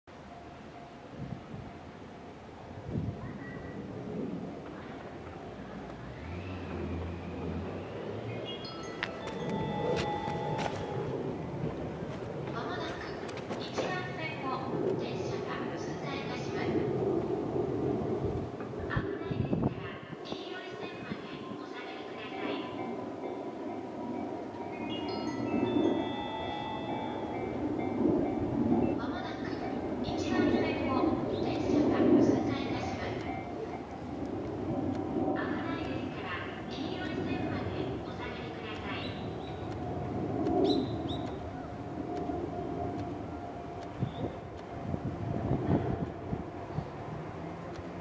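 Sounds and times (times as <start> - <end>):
held high tones: 8.6 - 11.6.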